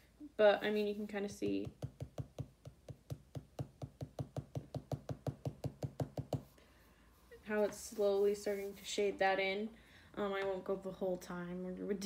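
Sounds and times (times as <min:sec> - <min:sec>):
pen tapping on paper: 0:01.5 - 0:06.5.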